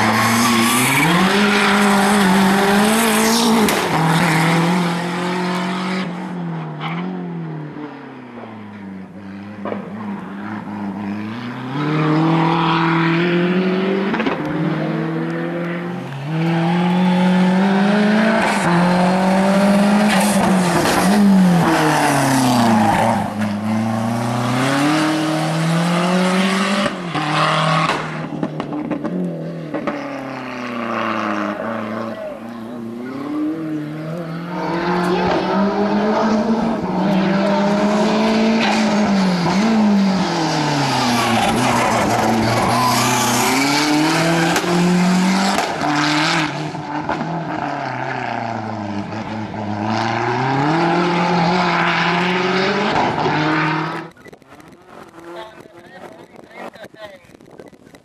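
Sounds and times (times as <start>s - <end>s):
car engine revving hard: 11.0s - 29.1s, 33.0s - 54.1s.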